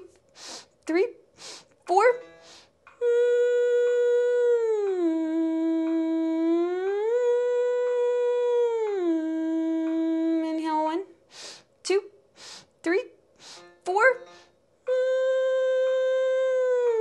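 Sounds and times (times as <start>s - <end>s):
faint metronome ticks: 1.7s - 8.1s, 9.7s - 10.8s
woman humming sliding note: 2.4s - 10.8s, 14.9s - 17.0s.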